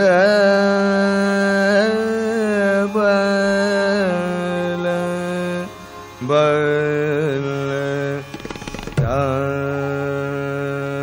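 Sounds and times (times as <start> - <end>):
sarangi: 0.0 - 11.0
singer holding long notes: 0.0 - 11.0
tanpura drone: 0.0 - 11.0.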